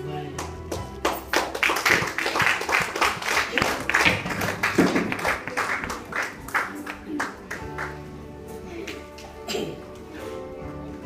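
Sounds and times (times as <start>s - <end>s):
hands clapping: 0.3s - 8.0s.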